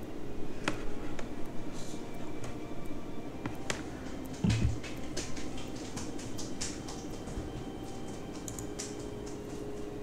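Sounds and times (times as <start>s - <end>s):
light irregular clicks and rustles: 3.6s - 10.0s.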